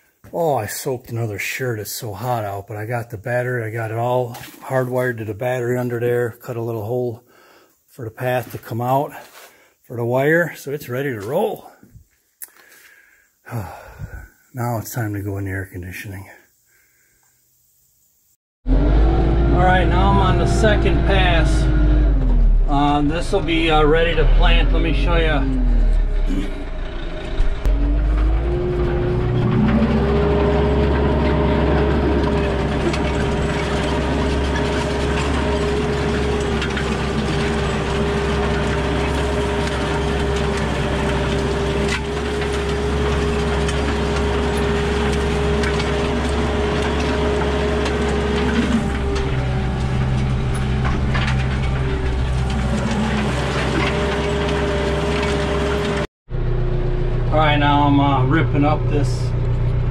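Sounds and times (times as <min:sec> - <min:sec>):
tractor diesel engine running: 0:18.6 - 0:59.9.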